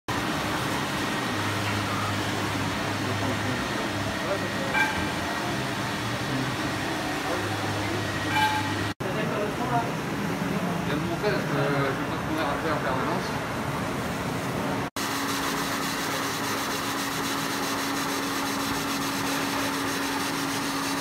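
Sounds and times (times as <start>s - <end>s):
floor scrubber motors whirring: 0.3s - 9.0s, 15.0s - 21.0s
brief tones: 4.7s - 5.3s, 8.1s - 8.9s.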